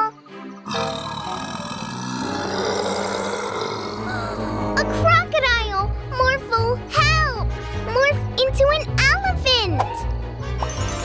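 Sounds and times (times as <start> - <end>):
background music: 0.0 - 11.0
rough animal roar: 0.7 - 4.8.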